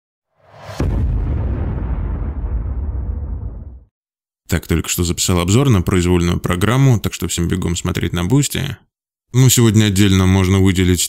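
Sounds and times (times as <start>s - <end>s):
low rumbling boom: 0.4s - 3.9s.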